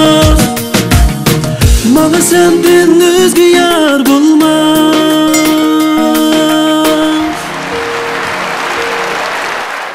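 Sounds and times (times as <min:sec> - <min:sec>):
song ending: 0:00.0 - 0:09.9
audience applause: 0:07.0 - 0:09.9.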